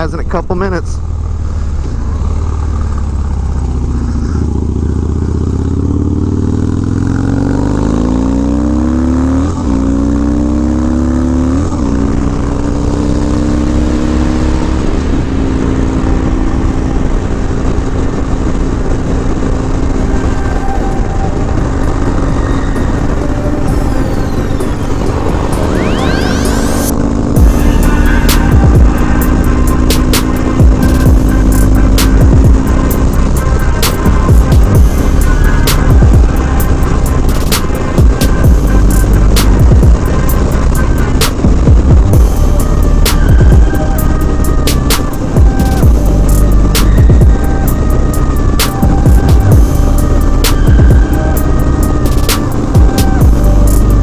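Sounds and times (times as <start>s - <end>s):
motorcycle engine shifting gears: 0.4s - 54.0s
music: 19.0s - 54.0s.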